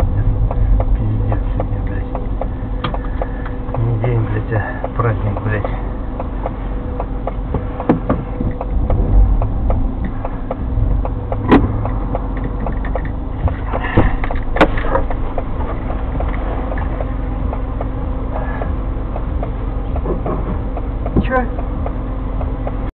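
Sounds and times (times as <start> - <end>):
car rumble and hum: 0.0 - 22.9
light ticking: 0.0 - 22.9
sharp knocks: 0.0 - 22.9.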